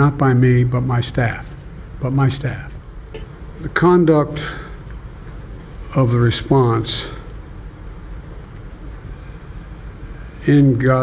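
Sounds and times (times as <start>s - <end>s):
low microphone hum and hiss: 0.0s - 11.0s.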